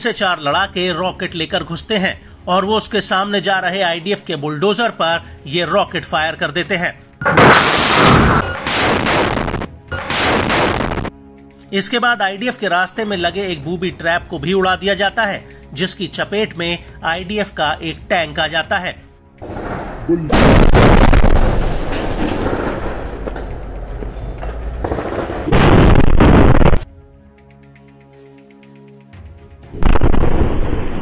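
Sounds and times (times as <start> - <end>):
faint background music: 0.0 - 25.5, 26.8 - 31.0
rocket blast: 7.2 - 11.1, 19.5 - 23.0, 24.8 - 26.8, 29.8 - 31.0
sudden loud burst: 7.2 - 11.1, 19.6 - 22.0, 29.8 - 31.0
explosion rumble: 19.5 - 26.8, 29.8 - 31.0.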